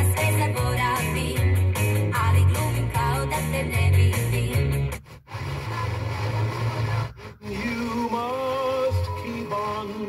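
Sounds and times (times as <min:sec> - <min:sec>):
radio static hiss: 0:05.0 - 0:08.0.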